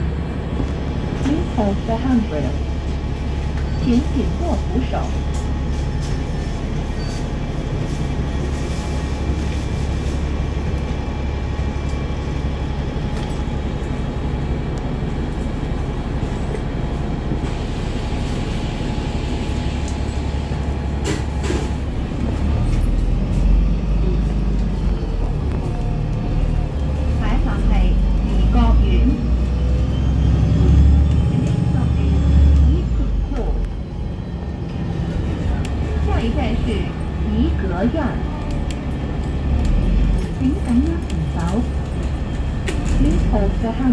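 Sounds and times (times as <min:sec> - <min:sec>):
bus engine hum: 0:00.0 - 0:43.9.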